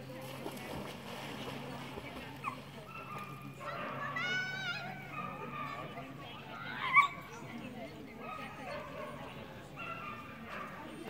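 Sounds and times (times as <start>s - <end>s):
dog yipping: 6.7s - 7.3s.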